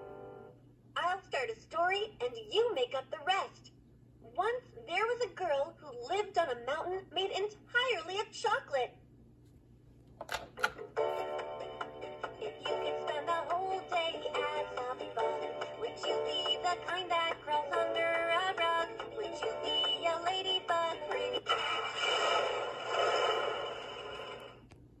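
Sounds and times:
toy speaker song with music: 12.1 - 21.5.

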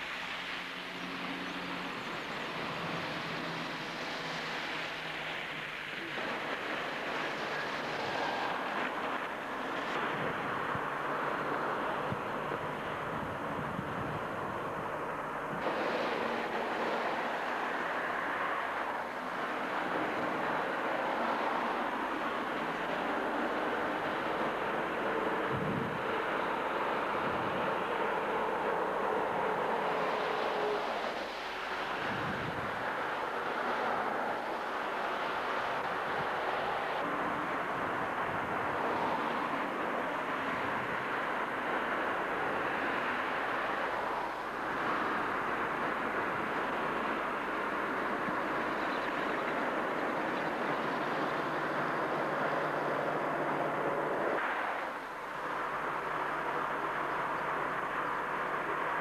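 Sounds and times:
traffic on a wet road: 0.0 - 59.0.

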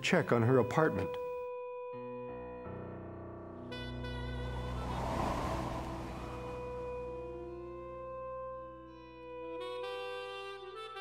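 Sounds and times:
background music sustained notes: 0.0 - 9.6
breathy whoosh: 4.4 - 7.5.

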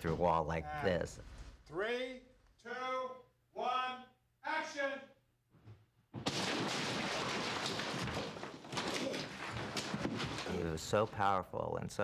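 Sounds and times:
loud crash through wall: 6.2 - 10.7
falling debris clattering: 6.2 - 11.0.

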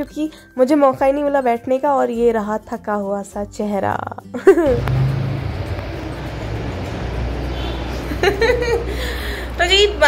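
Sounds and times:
electric fan running: 4.6 - 10.0.

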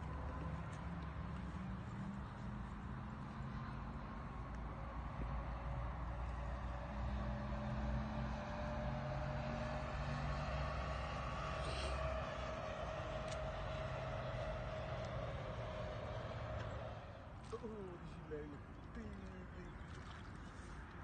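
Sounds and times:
distant engine drone: 0.0 - 21.0.

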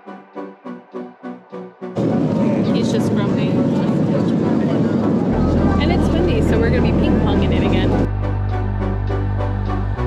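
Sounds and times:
airliner engine rush: 2.0 - 8.1
passengers chattering: 2.0 - 10.0.

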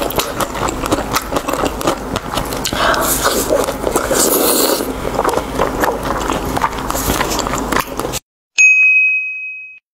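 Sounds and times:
electronic ding chime: 8.6 - 9.9.

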